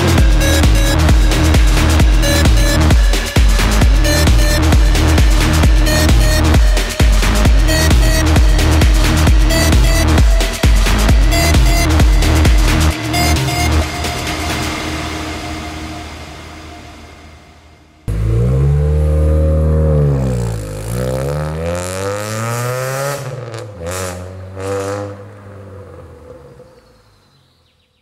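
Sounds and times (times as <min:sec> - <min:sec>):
car engine revving: 0:00.0 - 0:15.5, 0:18.1 - 0:26.8
electronic music: 0:00.0 - 0:21.7.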